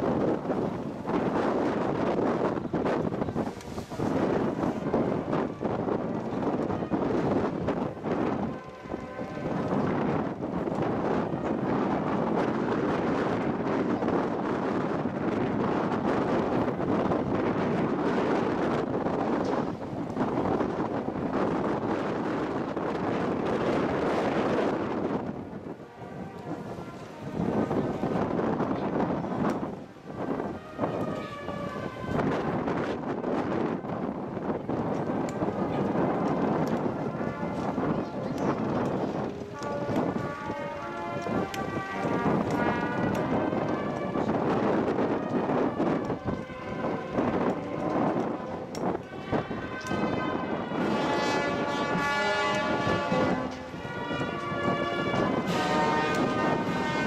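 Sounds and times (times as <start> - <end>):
crowd walking past: 0.0 - 57.0
wind buffeting microphone: 0.0 - 57.0
held musical notes: 0.7 - 14.1, 23.9 - 57.0.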